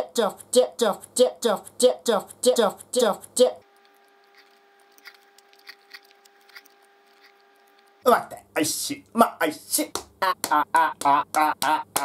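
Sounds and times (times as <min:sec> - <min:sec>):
rhythmic repeated voice sounds: 0:00.0 - 0:03.7, 0:08.0 - 0:12.0
faint steady hum: 0:00.0 - 0:12.0.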